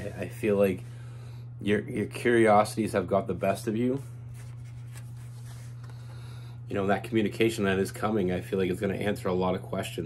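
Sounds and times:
cards rustling: 0:04.0 - 0:06.2.

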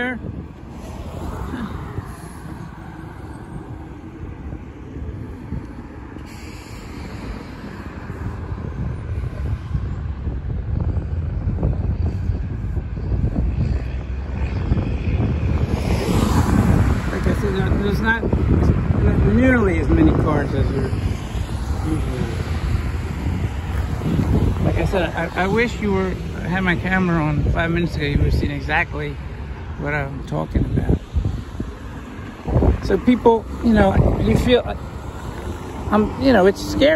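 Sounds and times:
cars passing close by: 0:00.0 - 0:36.9
road traffic: 0:00.0 - 0:36.9.

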